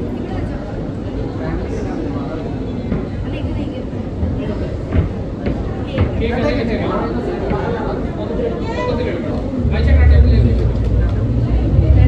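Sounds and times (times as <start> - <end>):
people talking indistinctly: 0.0 - 12.0
steady low rumble: 9.6 - 12.0.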